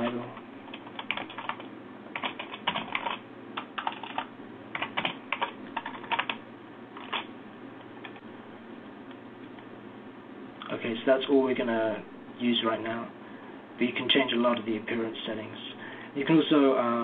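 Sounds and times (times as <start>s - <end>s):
computer keyboard typing: 0.0s - 6.4s, 7.0s - 7.3s, 8.0s - 8.2s.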